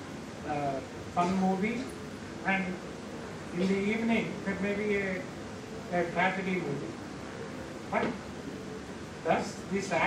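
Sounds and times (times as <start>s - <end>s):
hall room noise: 0.0s - 10.0s
man speaking amplified: 0.4s - 2.8s, 3.5s - 5.3s, 5.9s - 7.0s, 7.9s - 8.2s, 9.2s - 10.0s.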